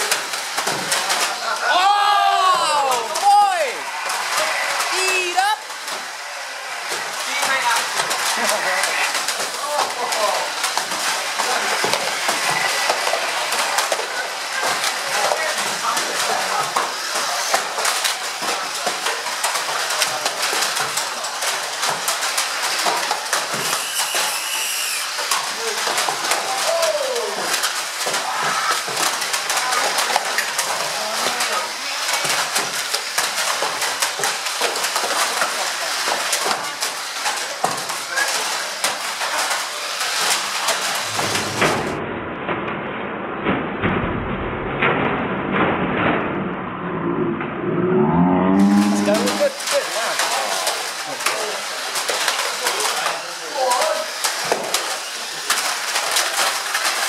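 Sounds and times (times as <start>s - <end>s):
indistinct chatter: 0.0s - 34.1s
small electric toy cars running: 0.0s - 41.6s, 48.6s - 57.0s
toy cars knocking together: 48.6s - 57.0s.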